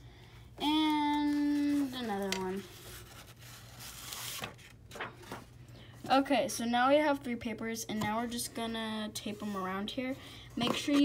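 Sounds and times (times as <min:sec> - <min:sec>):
paper sliding and rustling: 0:01.2 - 0:05.5.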